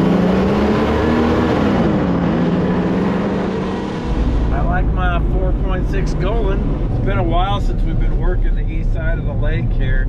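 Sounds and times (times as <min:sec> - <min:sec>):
engine revving on sand: 0:00.0 - 0:06.6
vehicle rumble from inside cab: 0:00.0 - 0:10.0.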